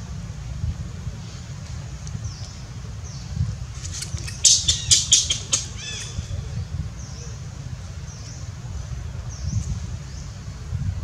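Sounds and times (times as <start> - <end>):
low steady rumble: 0.0 - 11.0
young monkey squealing screams: 4.3 - 6.3.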